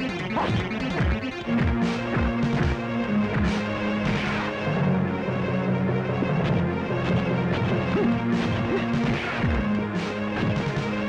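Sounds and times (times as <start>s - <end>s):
dramatic background music: 0.0s - 11.0s
punch sound effects: 3.4s - 4.6s.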